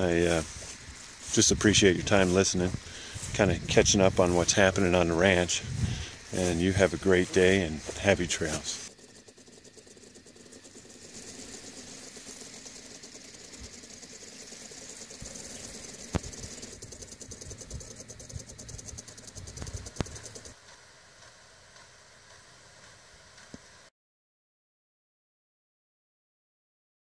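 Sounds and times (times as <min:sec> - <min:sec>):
quiet hiss: 0:00.0 - 0:08.9
high-pitched pulsing buzz: 0:00.0 - 0:23.9
sharp clicks: 0:08.0 - 0:20.6.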